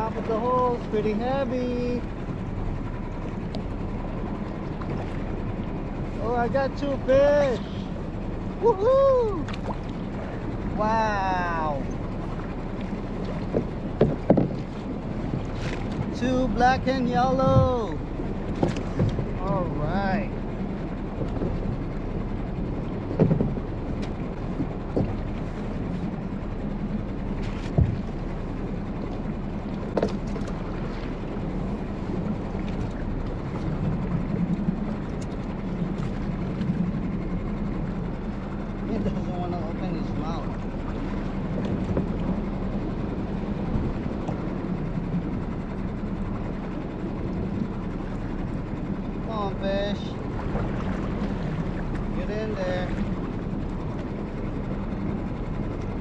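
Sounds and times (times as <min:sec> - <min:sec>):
constant low hum: 0:00.0 - 0:56.0
sea noise: 0:00.0 - 0:56.0
wind: 0:00.0 - 0:56.0.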